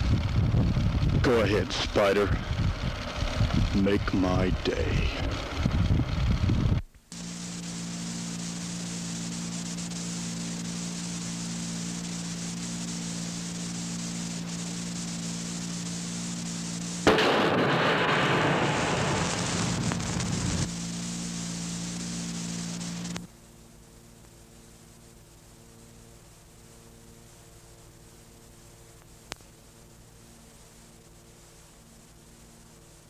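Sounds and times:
low electrical hum with hiss: 0.0s - 33.0s
burst of rushing noise: 7.2s - 23.1s.

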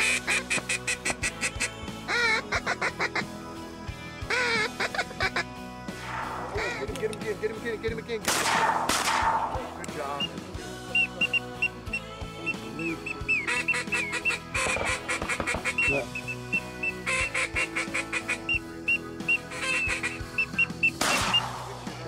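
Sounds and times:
duck call quacking: 0.0s - 3.2s, 4.3s - 5.5s, 6.4s - 7.0s, 11.0s - 21.4s
background music with held chords: 0.0s - 22.0s.

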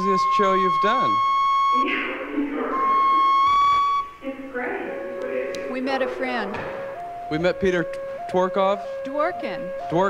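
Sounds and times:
high-pitched whistle-like tone: 0.0s - 4.2s.

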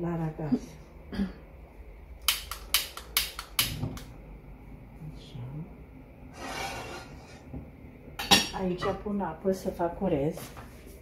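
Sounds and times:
piezo gas lighter clicking: 2.2s - 4.1s
gas burner lighting: 2.2s - 4.4s.

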